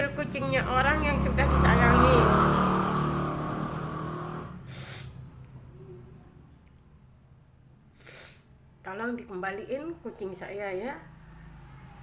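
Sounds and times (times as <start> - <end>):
passing vehicle engine hum: 0.0 - 6.5, 11.0 - 12.0
road noise: 0.0 - 7.9, 9.6 - 12.0.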